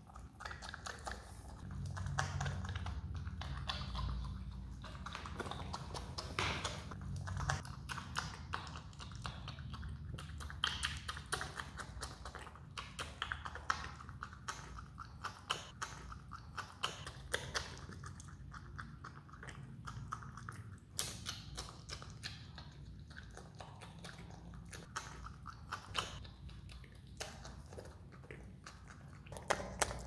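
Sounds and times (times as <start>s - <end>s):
animal teeth chewing clicks: 0.0s - 30.0s.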